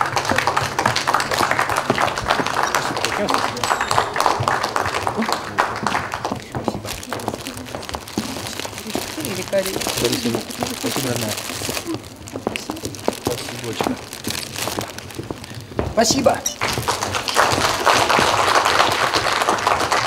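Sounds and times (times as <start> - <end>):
indistinct voices: 0.0 - 20.0
wrapping paper crinkling: 1.3 - 20.0.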